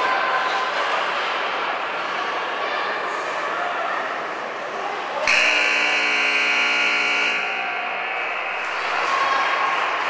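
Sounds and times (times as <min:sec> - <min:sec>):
scoreboard buzzer: 0:05.3 - 0:08.2.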